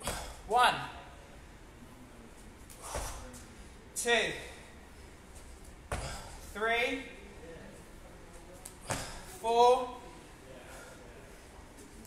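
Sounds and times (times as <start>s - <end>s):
feet landing on gym floor: 0.0s - 0.3s, 5.8s - 6.4s, 8.8s - 9.3s.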